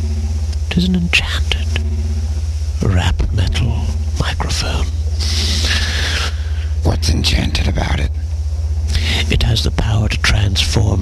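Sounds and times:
steady low hum: 0.0s - 11.0s
breathy whispered voice: 1.0s - 1.9s, 2.8s - 8.0s, 8.9s - 9.5s.

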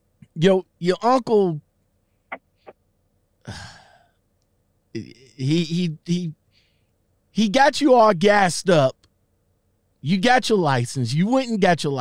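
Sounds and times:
person sighing: 3.5s - 4.0s.

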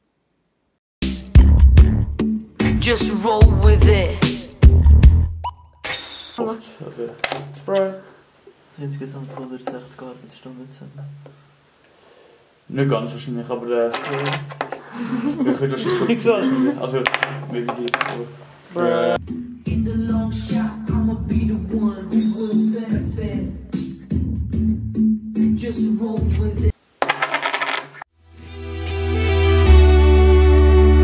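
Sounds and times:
person speaking: 6.4s - 11.2s, 12.8s - 19.2s
poker chips clicking on table: 17.0s - 18.2s, 27.0s - 28.0s.

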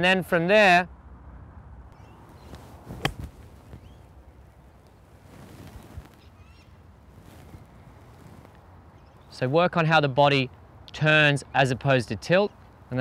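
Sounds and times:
outdoor background noise: 0.0s - 13.0s
golf club striking ball: 2.9s - 3.8s.

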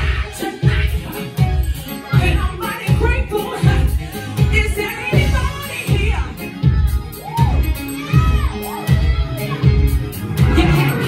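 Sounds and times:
gospel band playing: 0.0s - 11.0s
congregation shouting and cheering: 7.0s - 11.0s.

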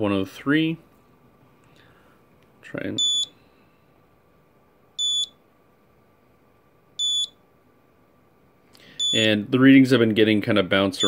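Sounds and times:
radiation meter short high beeps: 3.0s - 3.4s, 5.0s - 5.4s, 7.0s - 7.4s, 9.0s - 9.3s.

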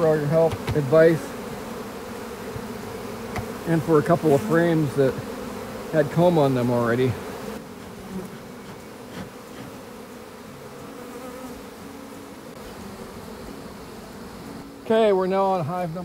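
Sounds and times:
honey bees buzzing: 0.0s - 16.0s.

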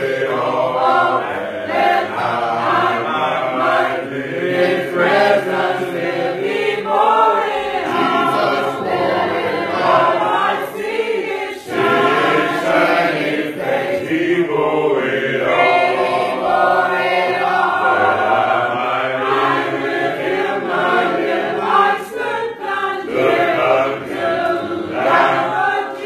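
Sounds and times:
congregation singing a hymn: 0.0s - 26.0s.

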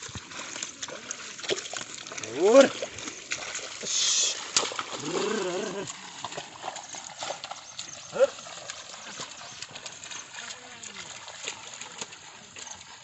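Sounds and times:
hooves squelching in wet mud: 0.0s - 13.0s
man calling to oxen: 2.2s - 2.8s, 3.8s - 5.9s, 8.1s - 8.4s.

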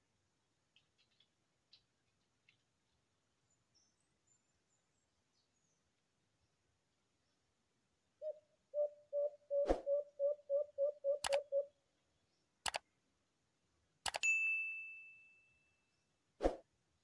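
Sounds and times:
dove cooing: 8.2s - 11.7s
sharp clicks: 11.2s - 11.5s, 12.6s - 12.9s, 14.0s - 14.2s.

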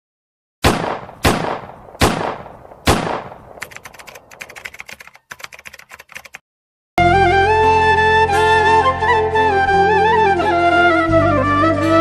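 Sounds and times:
small clicks: 3.6s - 6.4s.

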